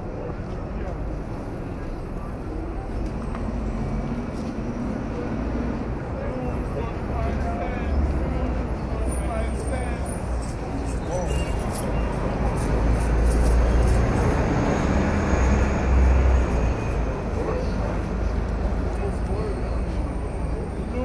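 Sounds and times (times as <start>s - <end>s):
pedestrians chattering: 0.0s - 21.0s
traffic rumble: 0.0s - 21.0s.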